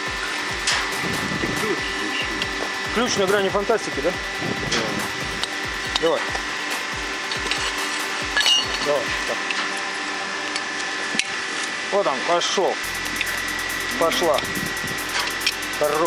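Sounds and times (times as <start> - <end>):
steady mechanical hum: 0.0 - 16.0
pipe wrench straining: 7.1 - 9.8.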